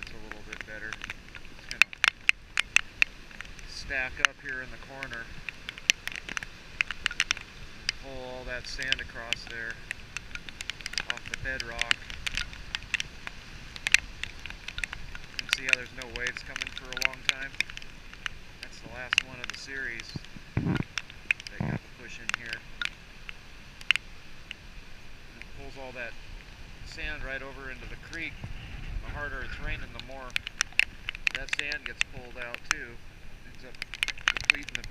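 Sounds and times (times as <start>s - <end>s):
wind buffeting microphone: 0.0s - 23.8s, 25.5s - 34.9s
faint surf: 0.0s - 34.9s
raindrops tapping on camera: 0.0s - 34.9s.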